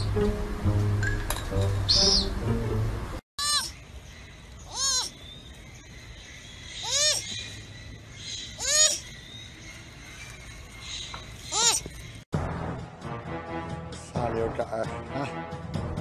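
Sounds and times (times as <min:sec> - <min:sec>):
background music: 0:00.0 - 0:03.2, 0:12.4 - 0:16.0
sloth high squeaks: 0:04.6 - 0:05.2, 0:06.8 - 0:07.5, 0:08.4 - 0:09.1, 0:11.3 - 0:12.0.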